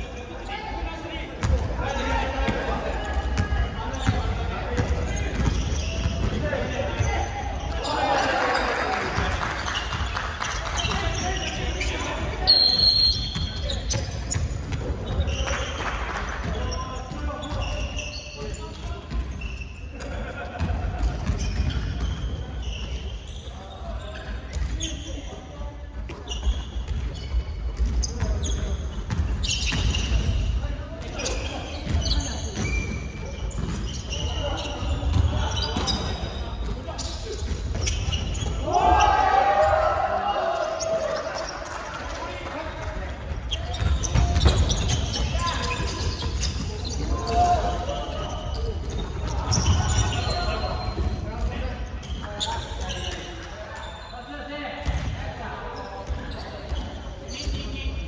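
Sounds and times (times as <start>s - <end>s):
basketballs bouncing on wooden floor: 3.4s - 7.1s, 31.8s - 36.2s, 43.7s - 51.5s, 54.8s - 55.2s
players shouting: 38.5s - 41.7s.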